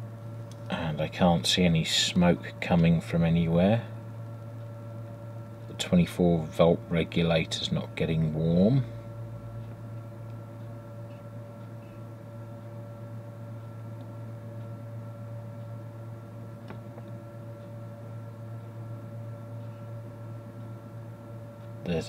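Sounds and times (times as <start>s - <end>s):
transformer mains hum: 0.0s - 22.0s.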